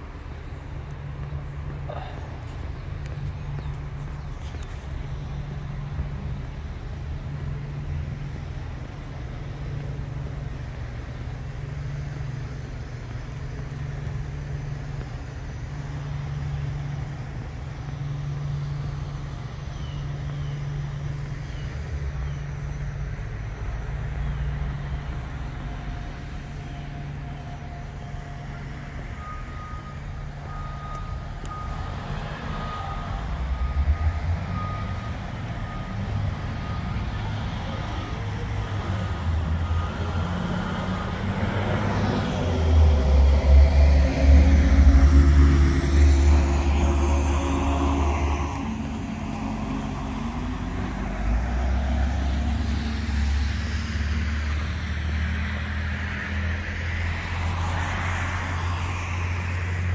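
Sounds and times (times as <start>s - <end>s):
cars passing on wet road: 0.0s - 59.9s
heavy vehicle engine rumble: 0.0s - 59.9s
reversing alarm beep: 26.9s - 38.2s, 38.9s - 41.2s.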